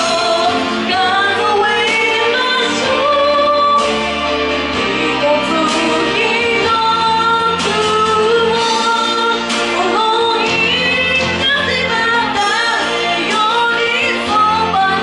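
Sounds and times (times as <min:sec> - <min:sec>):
instrumental accompaniment: 0:00.0 - 0:15.0
woman singing pop melody: 0:00.0 - 0:15.0.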